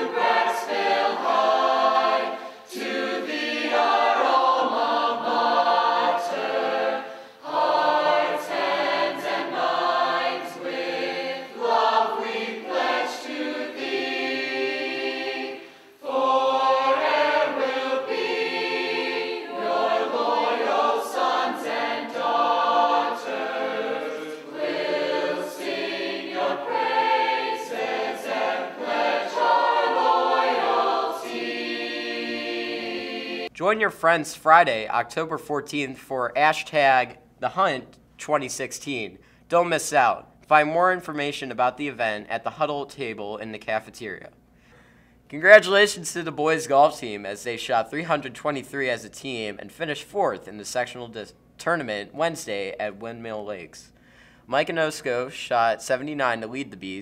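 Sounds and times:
choir singing: 0.0s - 33.5s.

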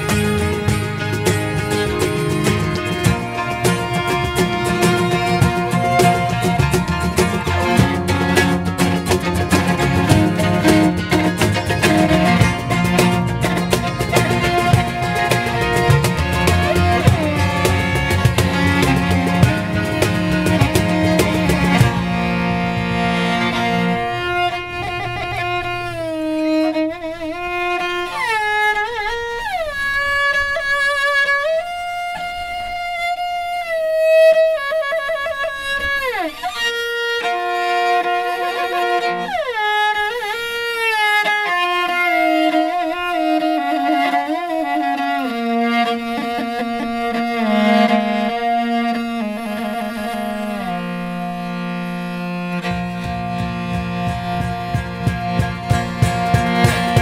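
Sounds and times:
horse-head fiddle melody: 0.0s - 57.0s
low accompaniment: 0.0s - 57.0s.

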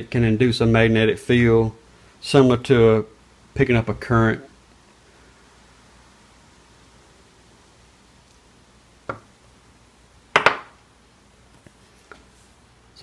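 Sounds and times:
hard objects knocking on workbench: 9.1s - 9.3s, 10.3s - 10.8s.

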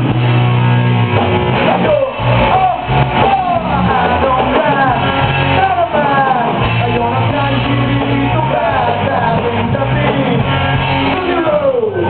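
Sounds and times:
rock band playing: 0.0s - 12.0s
person singing: 1.6s - 12.0s.

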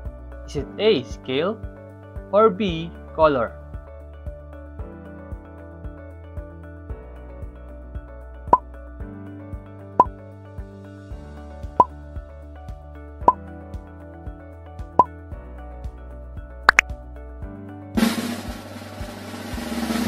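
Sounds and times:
soft background music: 0.0s - 20.0s
drum roll: 18.0s - 20.0s.

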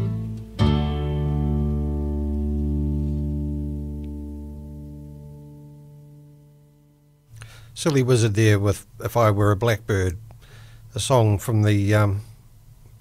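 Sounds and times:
folk song chord ringing: 0.0s - 7.2s.

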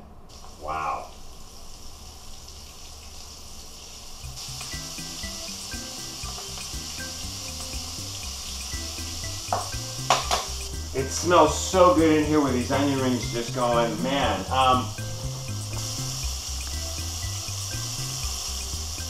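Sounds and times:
onion rings sizzling in hot oil: 0.3s - 19.0s
quiet background music: 3.8s - 19.0s.

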